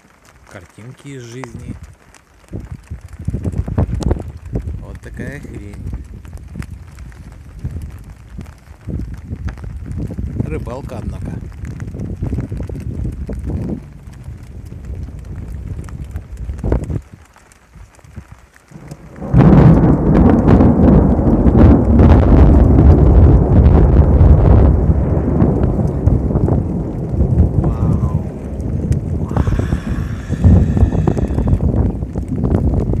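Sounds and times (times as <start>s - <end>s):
wind and rain buffeting microphone: 0.0s - 33.0s.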